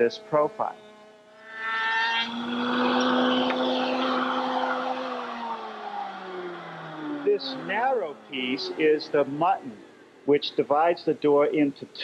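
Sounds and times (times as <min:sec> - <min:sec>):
router bit cutting wood: 0:00.0 - 0:10.0
router motor whine: 0:00.0 - 0:10.2.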